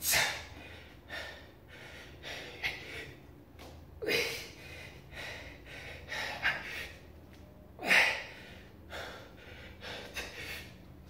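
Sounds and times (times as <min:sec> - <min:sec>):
man breathing hard: 0:00.0 - 0:03.4, 0:04.0 - 0:07.1, 0:07.8 - 0:11.0.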